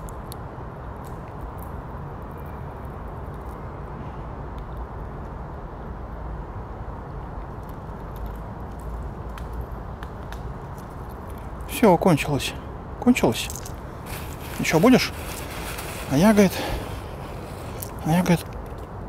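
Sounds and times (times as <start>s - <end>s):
squirrel cracking seeds: 7.4s - 11.8s, 13.2s - 19.0s
man's voice: 14.6s - 15.2s, 16.1s - 16.9s, 18.0s - 18.5s.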